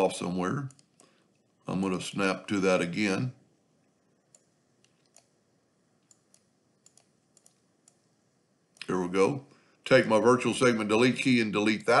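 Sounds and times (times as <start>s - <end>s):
computer mouse clicks: 0.7s - 1.4s, 4.3s - 5.4s, 6.0s - 8.1s.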